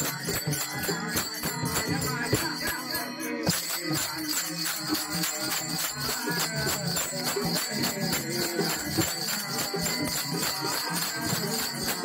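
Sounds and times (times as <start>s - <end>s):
hand drums playing fast rhythm: 0.0s - 12.0s
small hand cymbals jingling: 0.0s - 12.0s.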